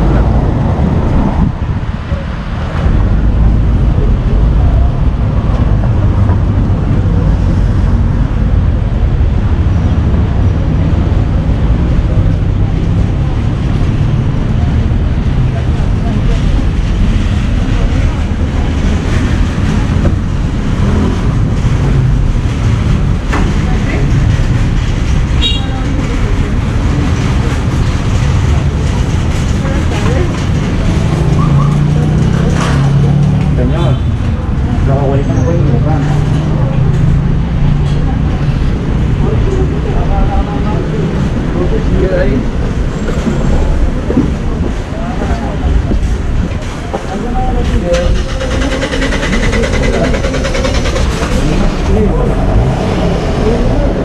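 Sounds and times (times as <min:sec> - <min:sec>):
heavy low rumble: 0:00.0 - 0:54.0
traffic noise: 0:00.0 - 0:54.0.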